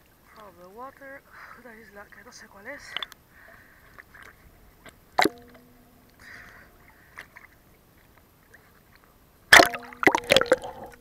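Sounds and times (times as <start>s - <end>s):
sea water sloshing and splashing: 2.6s - 11.0s.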